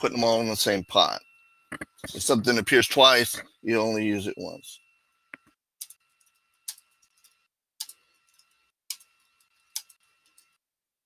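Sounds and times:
computer keyboard typing: 5.4s - 10.6s.

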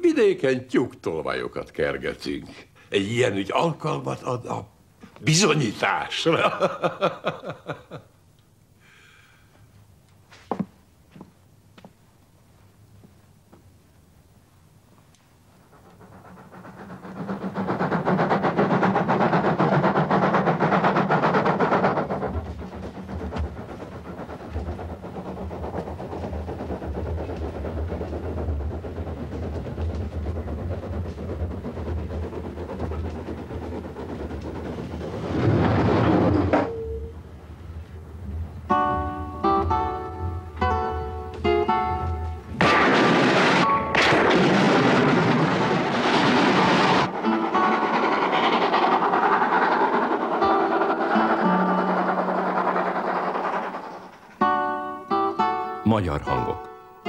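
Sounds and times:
train rumbling: 0.0s - 57.0s
music: 38.7s - 42.6s, 47.2s - 48.1s, 54.4s - 57.0s
loud rushing burst: 42.5s - 54.1s.

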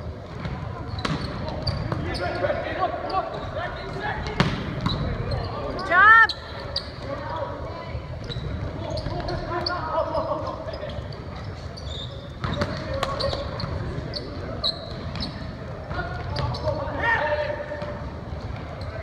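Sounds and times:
volleyball hits: 4.2s - 5.1s.

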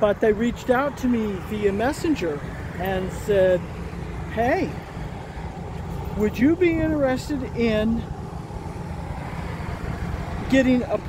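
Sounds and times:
road traffic hiss: 0.0s - 11.0s.

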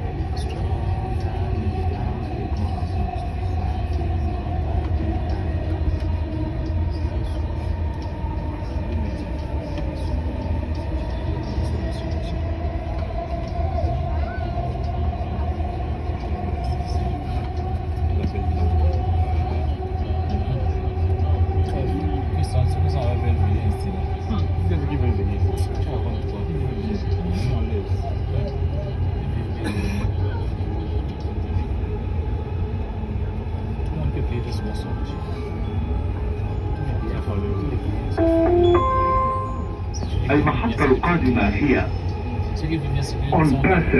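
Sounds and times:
train rumble with motor whine: 0.0s - 43.9s.

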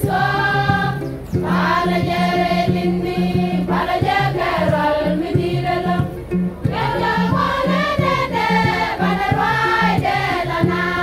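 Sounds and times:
steady beat: 0.0s - 11.0s
women's choir singing: 0.0s - 11.0s.

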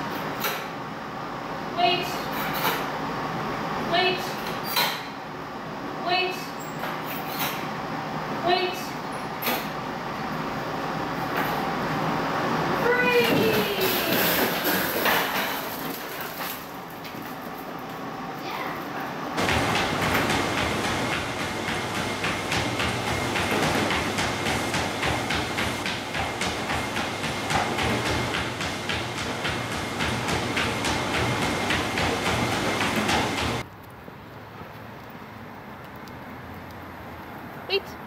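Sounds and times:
dog paws striking treadmill belt: 0.0s - 0.7s, 12.6s - 33.7s
motorized treadmill running: 8.4s - 33.6s.

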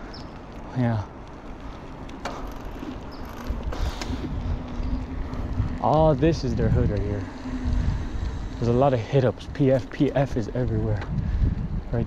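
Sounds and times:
bicycle tyre rumble: 0.0s - 12.0s
wind buffeting microphone: 0.0s - 12.0s.

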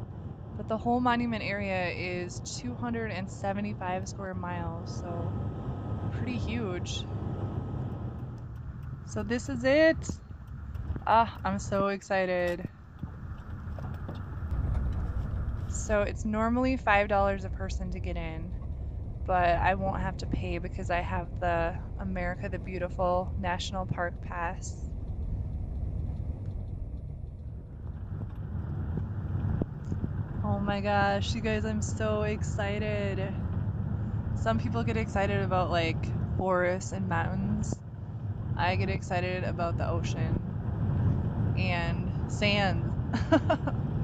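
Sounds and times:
vehicle road and engine rumble: 0.0s - 44.0s.

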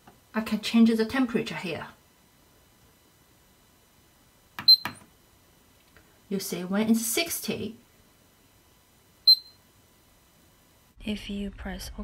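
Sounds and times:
short high beep: 9.3s - 9.6s.

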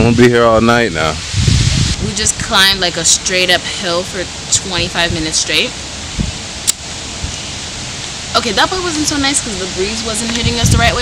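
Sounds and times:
leaves rustling: 0.0s - 11.0s
wind on microphone: 0.0s - 11.0s.

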